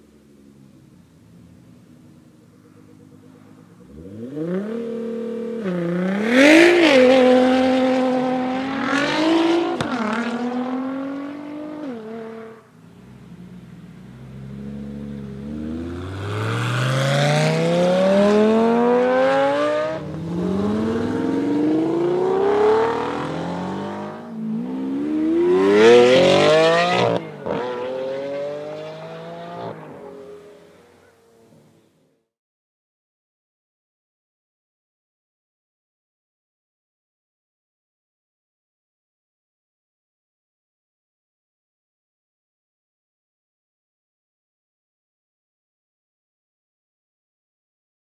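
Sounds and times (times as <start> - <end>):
car engine accelerating: 0.1 - 31.6
car engine revving through gears: 3.8 - 12.6, 14.1 - 30.4.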